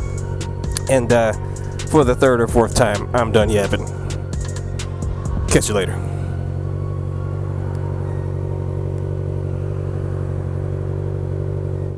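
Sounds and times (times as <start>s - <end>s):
motorcycle engine running: 0.0s - 11.9s.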